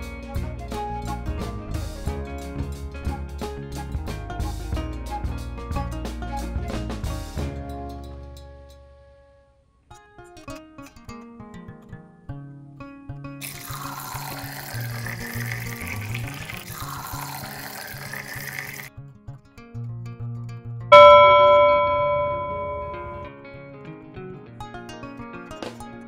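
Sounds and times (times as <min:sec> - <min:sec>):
background music with a beat: 0:00.0 - 0:08.5
drink pouring into a glass: 0:13.4 - 0:18.9
bell-like chime: 0:20.9 - 0:23.3.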